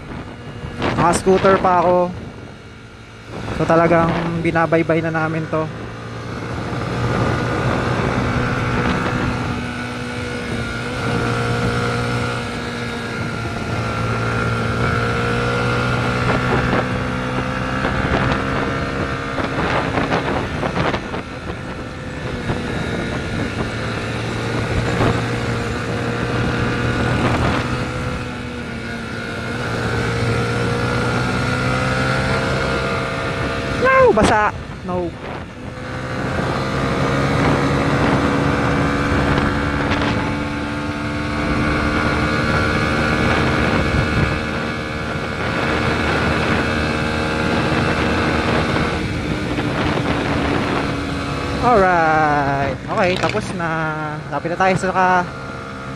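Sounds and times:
motorcycle engine running: 0.0s - 55.9s
wind noise: 0.0s - 55.9s.

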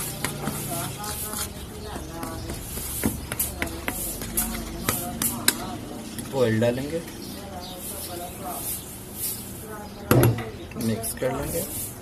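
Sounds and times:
spoon stirring flour: 0.0s - 6.4s, 7.6s - 10.2s, 10.8s - 12.0s.

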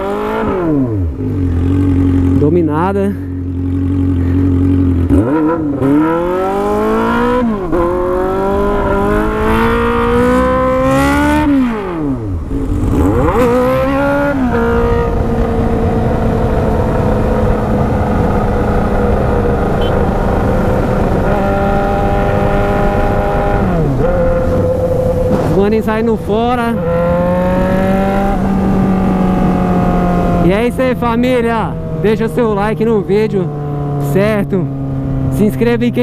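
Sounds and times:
motorcycle engine revving through gears: 0.0s - 36.0s.

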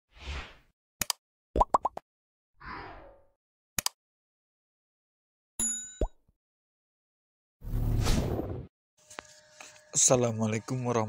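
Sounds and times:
rising bubbly pops: 1.6s - 2.0s.

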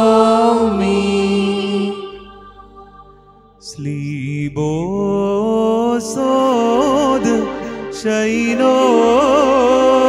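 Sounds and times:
person chanting: 0.0s - 10.0s.

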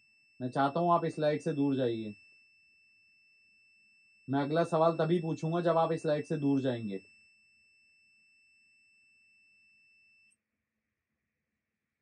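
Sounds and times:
high-pitched electronic alarm tone: 0.0s - 10.3s.

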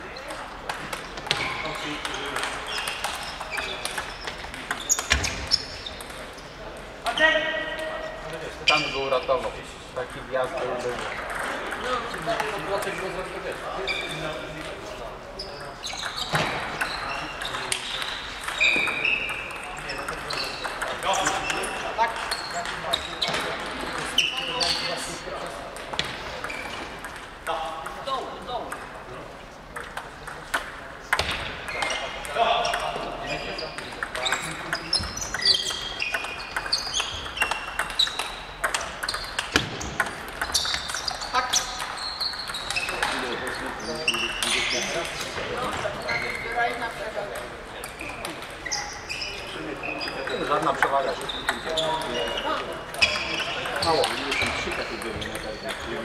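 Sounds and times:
voices in a busy hall: 0.0s - 56.0s
table tennis balls clicking: 0.6s - 6.8s, 11.0s - 13.7s, 15.9s - 24.6s, 25.5s - 29.0s, 29.7s - 45.8s, 46.6s - 48.7s
table tennis ball clicking: 33.8s - 43.6s.

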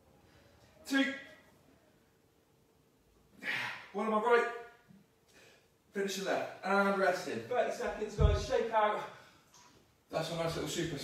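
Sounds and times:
man speaking: 0.8s - 1.4s, 3.4s - 4.8s, 5.9s - 9.2s, 10.1s - 11.0s.

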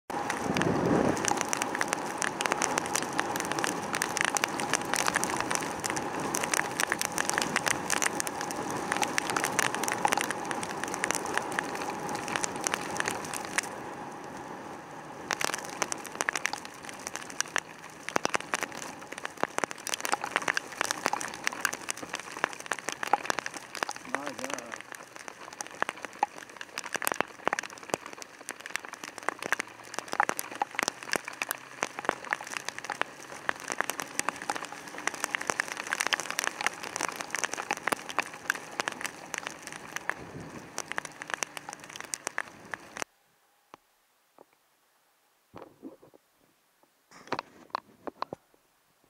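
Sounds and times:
wind noise: 0.1s - 24.1s, 29.2s - 43.0s
heavy rain striking camera: 0.1s - 43.1s.

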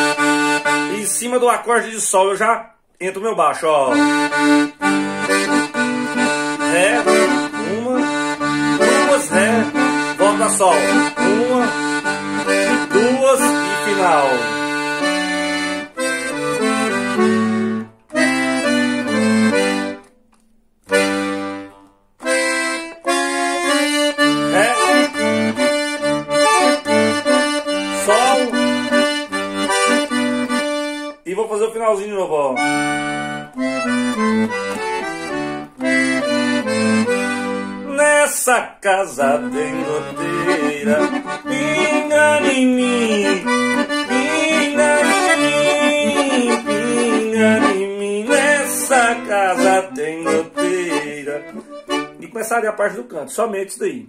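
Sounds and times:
piano accordion playing: 0.0s - 2.1s, 3.6s - 53.0s.

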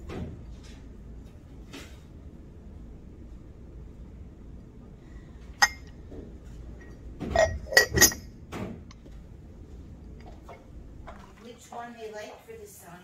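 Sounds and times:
ceramic lid clinking against mug: 7.3s - 8.2s.

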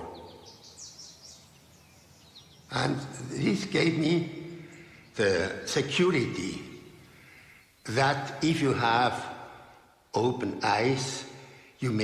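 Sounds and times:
faint bird chirps: 0.0s - 10.1s.

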